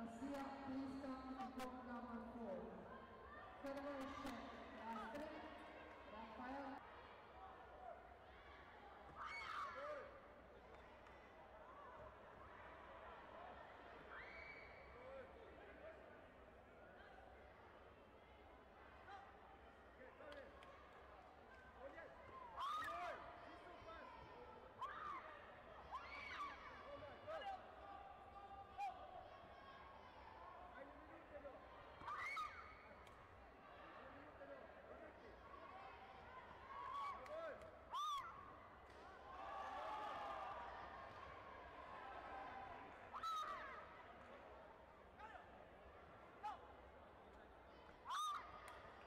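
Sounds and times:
sports hall murmur: 0.0s - 49.0s.

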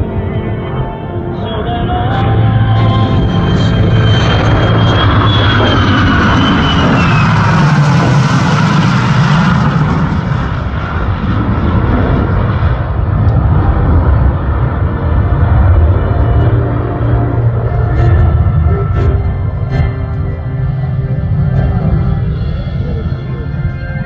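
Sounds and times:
aircraft engines rumbling: 0.0s - 24.0s
jet whine falling in pitch: 0.0s - 24.0s.

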